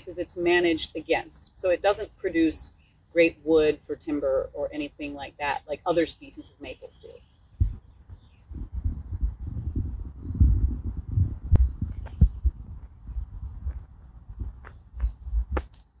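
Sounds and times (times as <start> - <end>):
uneven low rumble: 7.6 - 15.7.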